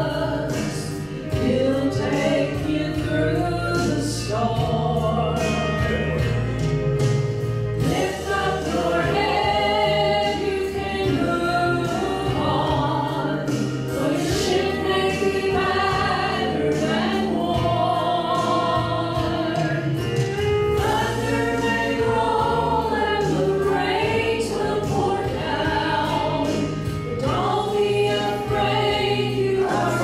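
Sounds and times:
women singing gospel in harmony: 0.0 - 6.4, 7.8 - 30.0
low bass accompaniment: 0.0 - 30.0.

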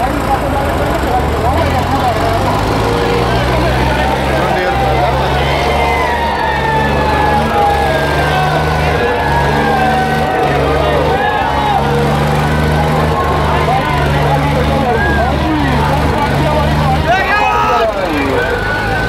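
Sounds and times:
crowd voices and shouting: 0.0 - 19.0
tractor diesel engine pulling hard: 0.0 - 19.0.

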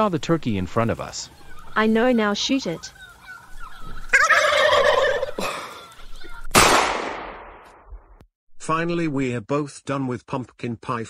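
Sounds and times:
turkey gobbling: 1.3 - 6.5
gunshot: 6.5 - 7.9.

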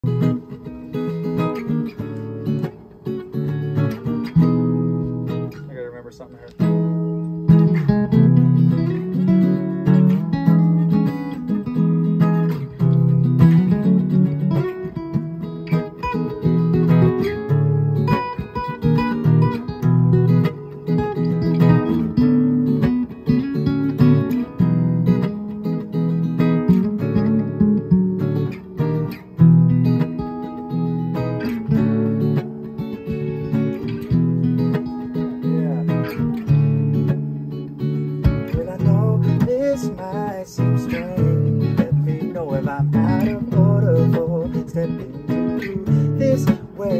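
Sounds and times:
acoustic guitars playing: 0.0 - 46.9.

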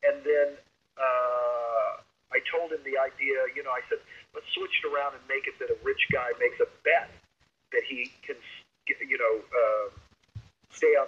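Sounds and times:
man talking: 1.0 - 7.1, 7.8 - 10.0.

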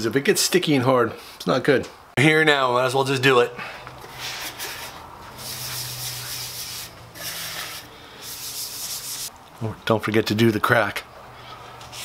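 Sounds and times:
pad rubbing on metal: 4.2 - 9.3.

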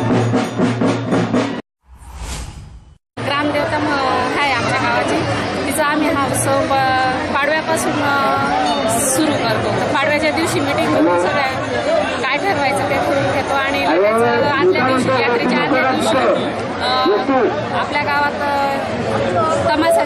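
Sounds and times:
woman speaking into microphone: 3.2 - 11.6
crowd chatter: 3.2 - 20.0.

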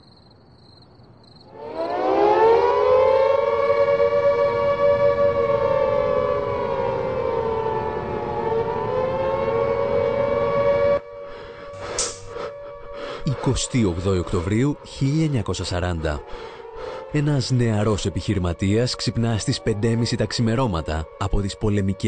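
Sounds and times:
air-raid siren wailing: 1.5 - 22.0.

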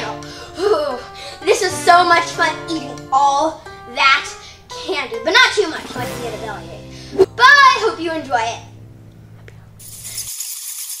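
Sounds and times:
hissing shaker-like rattle: 9.8 - 11.0.

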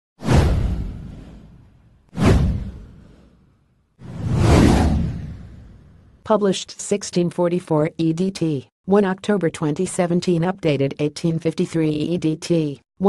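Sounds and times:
whoosh sound effects: 4.0 - 6.0.

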